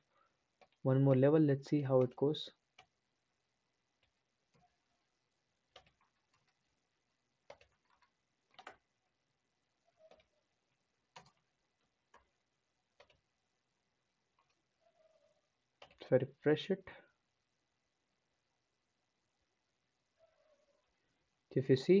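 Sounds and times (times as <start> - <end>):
keyboard and mouse clicks: 0.6 - 0.8, 5.7 - 6.7, 7.4 - 9.0, 10.0 - 10.4, 11.1 - 12.3, 12.9 - 13.2, 15.8 - 16.1.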